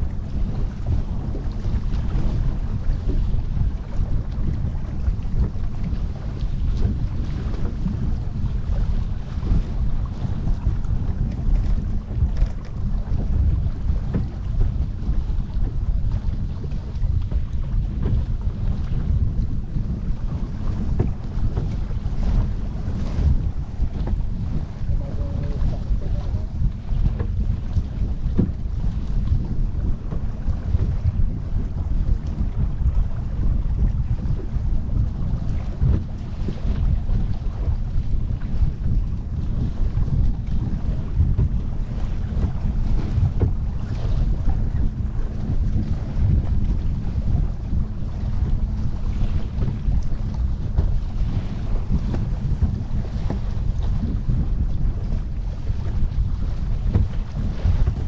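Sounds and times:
water rushing along hull: 0.0 - 58.0
wind buffeting microphone: 0.0 - 58.0.

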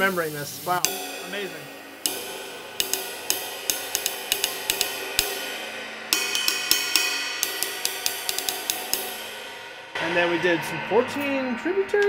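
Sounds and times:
drumstick striking cymbal: 0.0 - 12.0.

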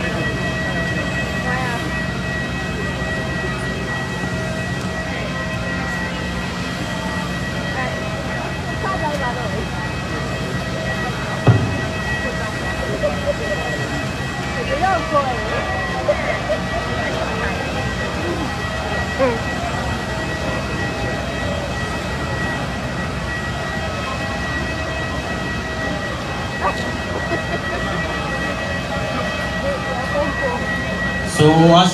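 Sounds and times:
machine whine and hum: 0.0 - 31.9.

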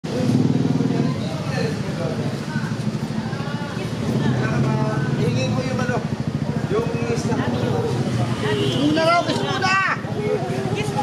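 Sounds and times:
motorcycle engine running: 0.1 - 11.0
people talking: 0.1 - 11.0.

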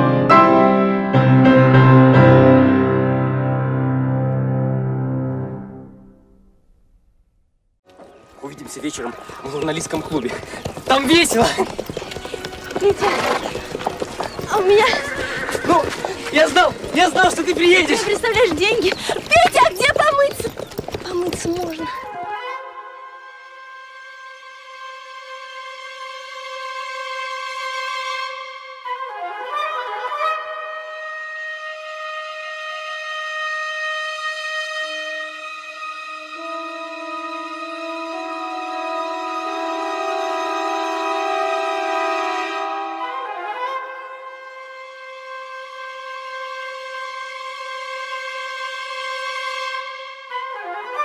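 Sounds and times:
hooves clopping on dirt: 7.9 - 22.1
horse whinnying: 9.2 - 17.3
voices: 14.4 - 22.0
long note on wind instrument: 30.1 - 50.6.

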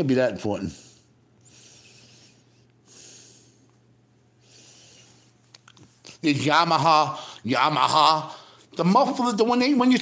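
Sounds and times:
man breathing: 0.7 - 5.4, 7.2 - 7.4, 8.3 - 8.8.

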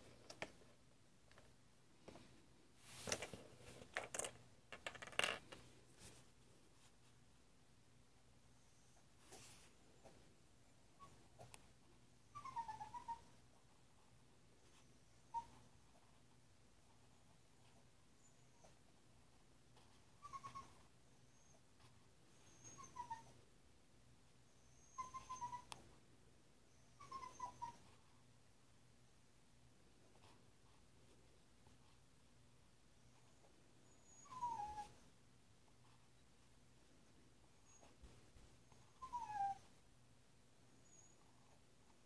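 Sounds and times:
puppy whimpering: 12.3 - 13.3, 15.2 - 15.6, 20.2 - 21.6, 22.4 - 23.4, 24.6 - 25.8, 26.8 - 27.9, 33.8 - 35.0, 38.7 - 39.7.

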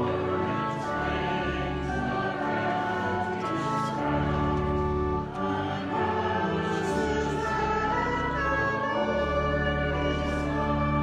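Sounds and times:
organ chords: 0.0 - 11.0
voices singing a hymn: 0.0 - 11.0.

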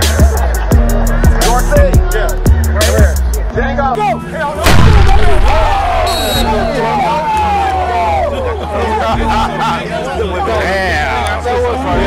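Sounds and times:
music beat: 0.0 - 3.7, 4.7 - 7.2
voices: 0.0 - 12.0
loud boom: 4.6 - 6.8.

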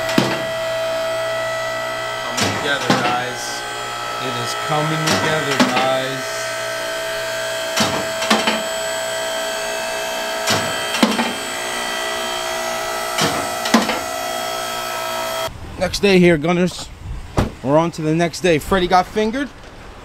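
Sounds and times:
sustained chords: 0.0 - 16.4.

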